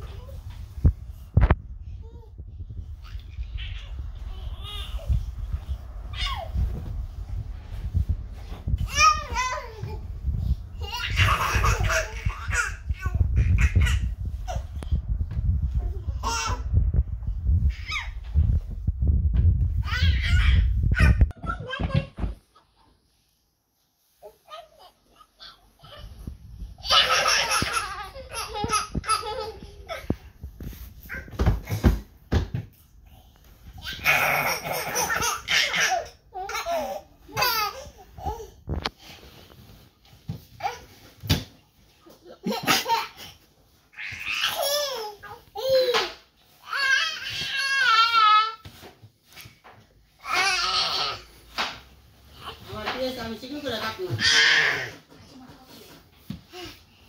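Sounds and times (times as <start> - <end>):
toddlers laughing and babbling: 0.0 - 15.1, 15.7 - 18.7, 19.8 - 23.0, 24.1 - 32.2, 33.0 - 39.8, 41.9 - 51.6, 54.1 - 57.0
bumping and handling rumble: 0.0 - 22.4
baby laughing: 10.8 - 14.6, 26.8 - 30.1, 33.8 - 38.0, 42.2 - 43.3.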